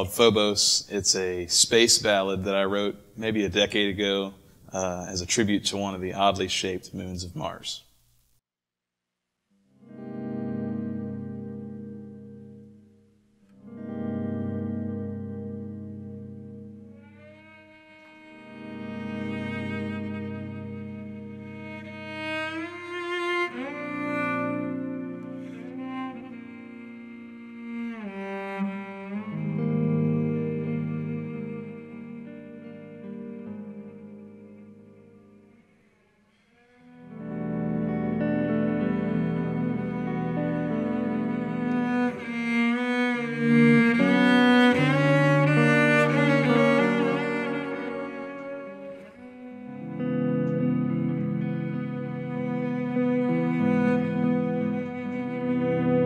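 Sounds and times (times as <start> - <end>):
electric guitar: 9.7 - 35.8, 36.6 - 56.0
bowed cello: 13.6 - 56.0.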